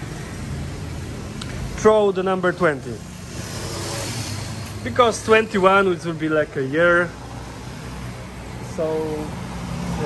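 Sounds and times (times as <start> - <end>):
vehicle passing: 2.6 - 10.0.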